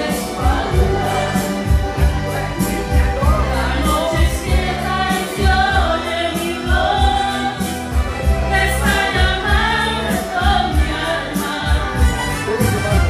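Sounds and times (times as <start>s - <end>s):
woman singing into microphone: 0.0s - 1.8s, 3.2s - 12.2s
karaoke backing track: 0.0s - 13.0s.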